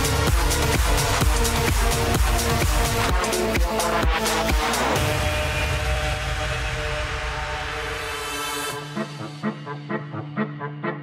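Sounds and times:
low bass rumble: 0.0s - 9.6s
held synth chords: 0.0s - 11.0s.

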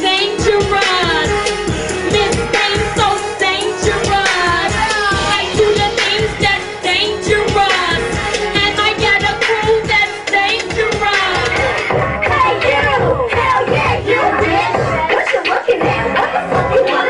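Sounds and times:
backing track with steady beat: 0.0s - 17.0s
woman singing into microphone: 0.0s - 17.0s.

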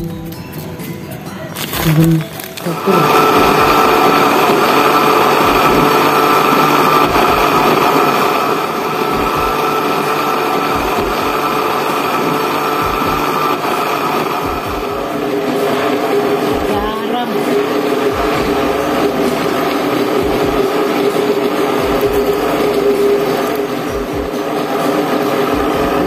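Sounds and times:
electric blender running: 1.6s - 26.0s.

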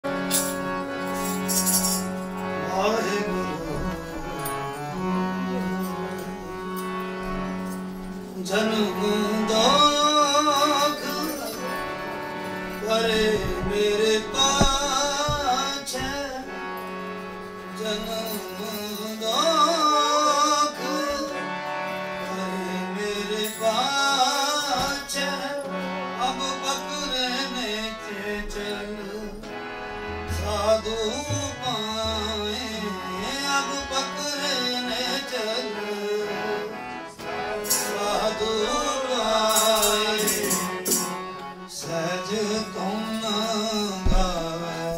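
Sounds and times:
harmonium drone and melody: 0.0s - 44.9s
man singing a hymn: 2.6s - 6.8s, 8.2s - 44.9s.

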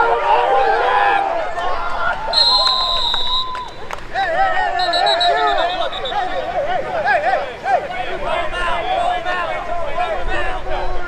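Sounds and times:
players shouting: 0.0s - 10.9s
referee's whistle blast: 2.3s - 3.9s, 4.6s - 6.4s.

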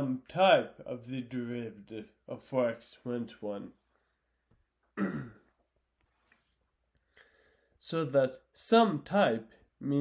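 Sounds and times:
man coughing: 5.0s - 5.6s.

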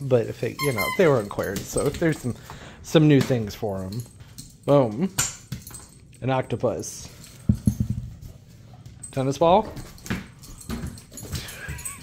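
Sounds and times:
dog claws clattering on tile floor: 0.2s - 12.0s.

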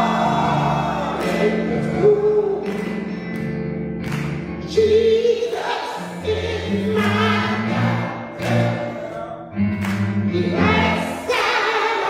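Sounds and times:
church choir singing: 0.0s - 3.4s, 4.7s - 12.0s.

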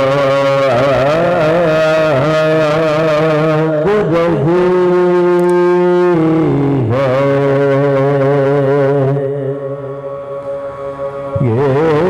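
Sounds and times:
low held vocal drone: 0.0s - 12.0s
men chanting a lament: 0.0s - 12.0s.

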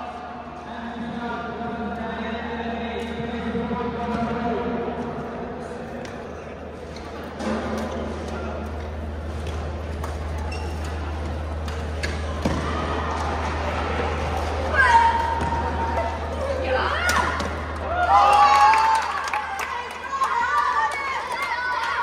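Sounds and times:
rackets hitting shuttlecock: 11.6s - 13.5s.

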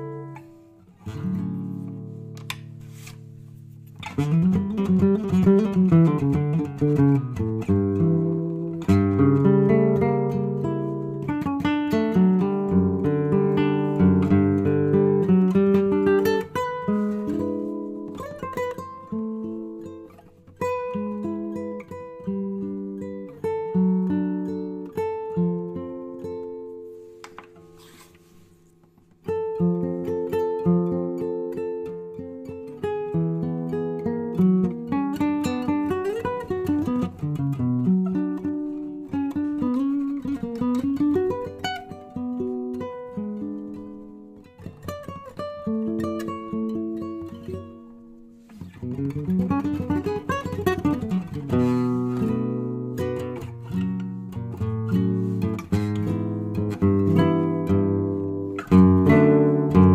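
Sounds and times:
classical guitar melody: 0.0s - 59.9s.

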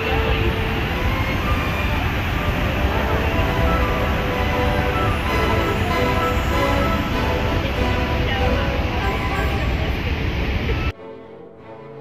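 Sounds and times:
waterfall roaring: 0.0s - 10.9s.

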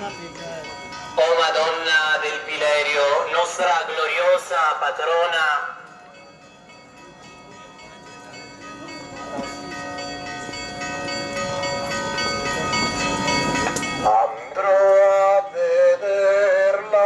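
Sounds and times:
murmur of noise: 0.0s - 15.2s
bells ringing: 0.0s - 17.0s.

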